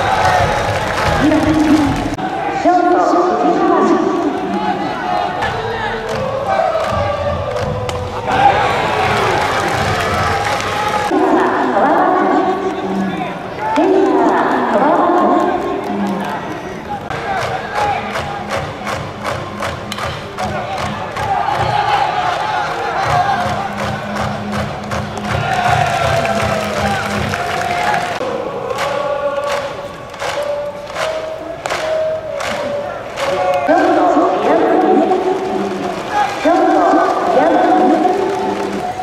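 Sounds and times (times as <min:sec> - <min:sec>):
drum beating: 0:00.0 - 0:02.2, 0:05.3 - 0:11.2, 0:17.1 - 0:22.1, 0:22.9 - 0:29.0
crowd chanting: 0:00.0 - 0:39.0.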